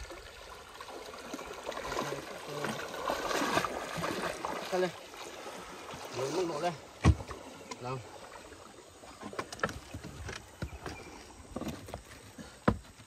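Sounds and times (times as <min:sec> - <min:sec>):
knocks against wooden boat: 0:07.0 - 0:07.4.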